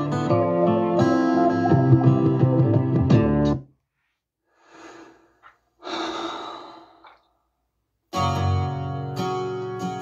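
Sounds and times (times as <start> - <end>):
person breathing hard: 4.4 - 7.3.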